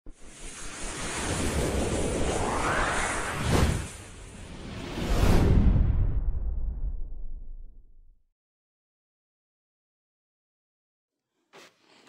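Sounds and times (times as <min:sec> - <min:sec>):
whoosh sound effect: 0:00.2 - 0:05.7.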